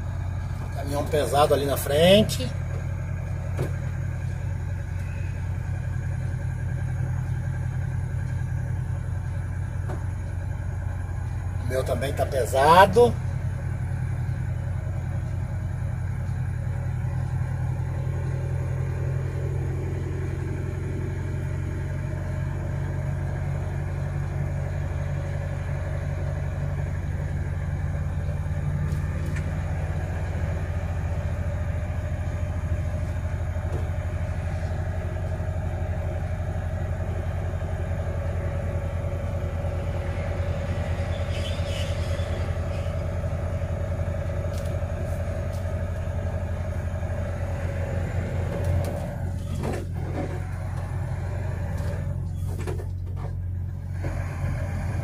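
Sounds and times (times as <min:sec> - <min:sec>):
road noise: 0:00.0 - 0:55.0
truck engine droning: 0:00.0 - 0:55.0.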